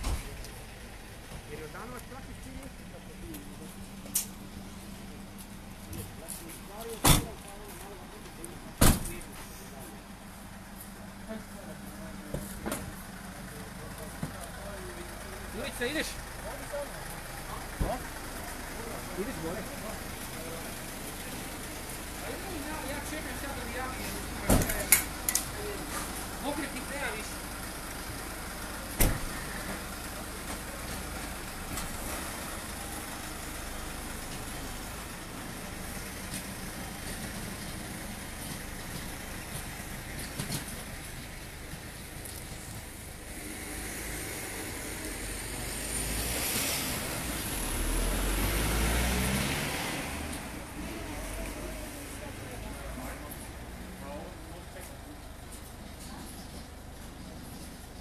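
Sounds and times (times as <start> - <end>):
low vehicle sound: 0.0 - 58.0
vehicle engine idling: 0.0 - 58.0.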